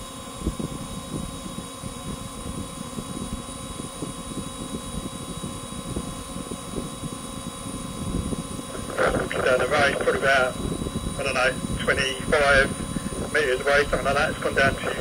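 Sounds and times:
faint steady hum: 0.0s - 15.0s
wind buffeting microphone: 0.0s - 15.0s.

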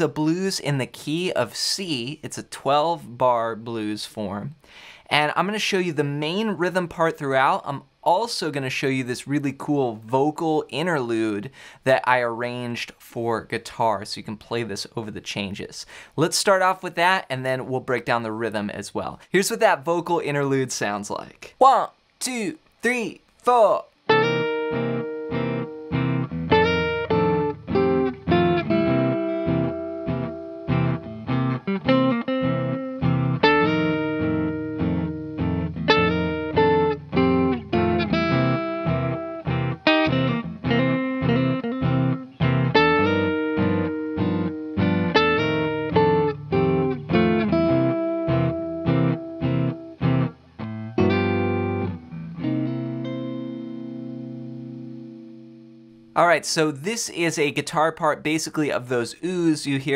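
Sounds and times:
electric guitar blues riff: 22.3s - 56.1s.

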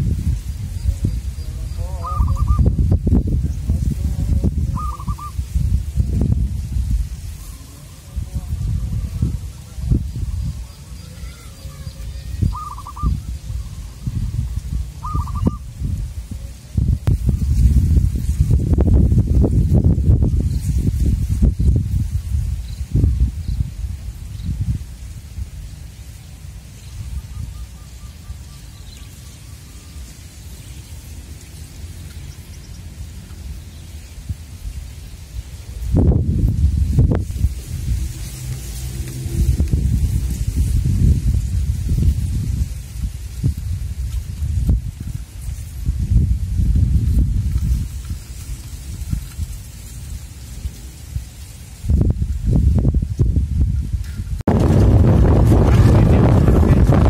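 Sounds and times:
wind gusting across microphone: 0.0s - 57.0s
short bird calls: 1.4s - 2.7s, 4.7s - 5.4s, 10.5s - 15.7s.

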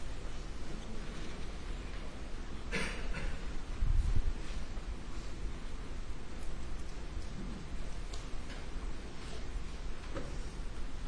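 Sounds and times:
faint ticks and clicks: 6.3s - 8.8s.

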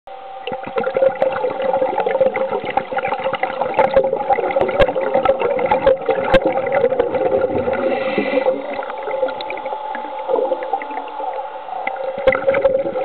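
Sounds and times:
underwater thruster motors whining: 0.1s - 13.0s
water bubbling: 0.4s - 13.0s.

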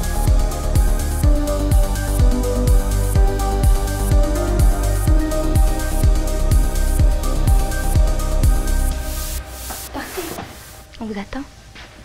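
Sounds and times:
kick drum and bass: 0.0s - 10.0s
bright hissing noise wash: 0.0s - 12.0s.

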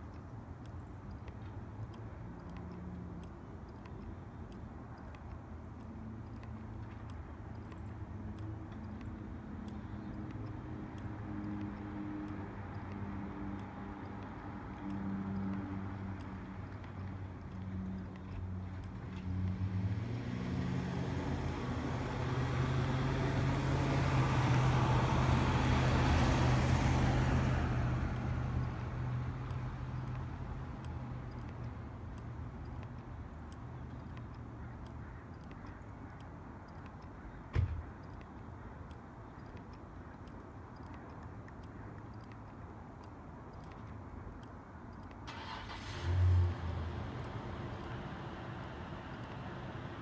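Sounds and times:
faint high ticks: 0.0s - 50.0s
passing motor vehicle: 6.0s - 35.4s, 45.3s - 50.0s.

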